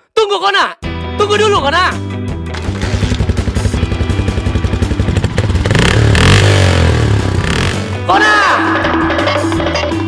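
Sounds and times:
motorcycle engine idling and revving: 2.5 - 8.1.

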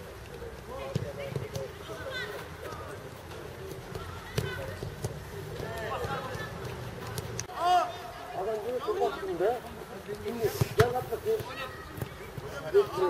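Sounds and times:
football being kicked: 0.8 - 1.7, 3.9 - 7.3, 10.5 - 12.5
young players shouting: 11.3 - 13.0.

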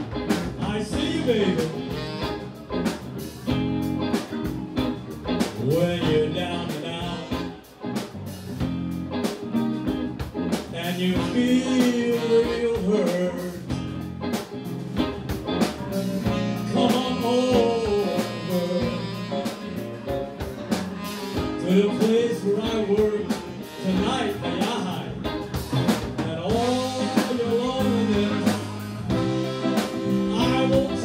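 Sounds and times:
saxophone: 0.0 - 8.0, 8.6 - 31.0
drum kit: 0.0 - 31.0
electric guitar: 0.0 - 31.0
man singing into a microphone: 0.4 - 2.4, 5.6 - 7.6, 10.7 - 13.9, 16.6 - 19.7, 21.6 - 25.3, 26.1 - 31.0.

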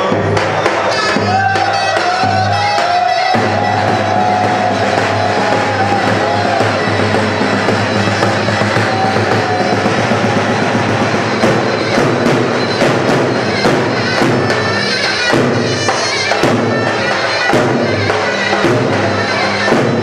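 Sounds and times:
bass drum beats: 0.0 - 20.0
shawm reedy melody: 0.0 - 20.0.

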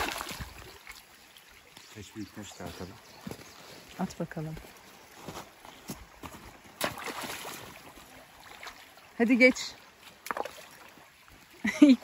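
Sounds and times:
stone splashing into water: 0.0 - 0.8, 6.8 - 7.8
water washing: 0.0 - 1.2.

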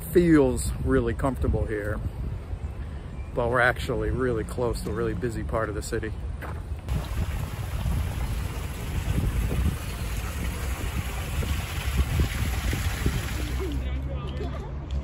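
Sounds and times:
distant city traffic rumble: 0.0 - 15.0
wind hiss: 6.9 - 13.8.

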